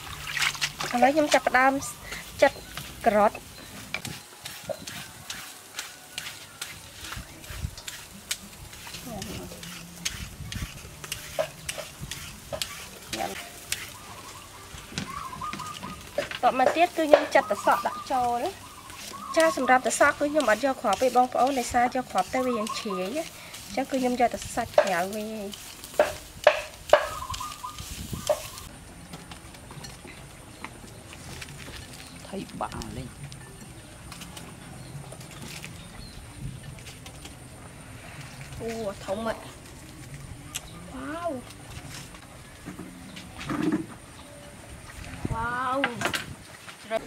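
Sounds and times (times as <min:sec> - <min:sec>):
wet stirring and squelching: 0:00.0 - 0:28.7.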